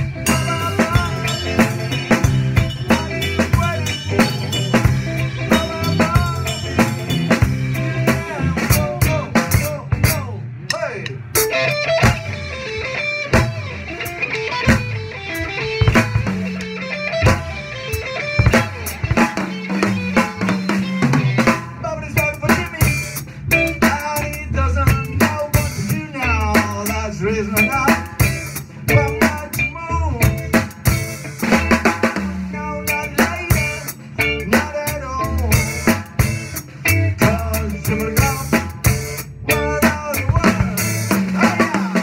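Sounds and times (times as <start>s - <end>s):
drum kit playing a steady beat: 0.0s - 42.0s
guitar and band instruments: 0.0s - 42.0s.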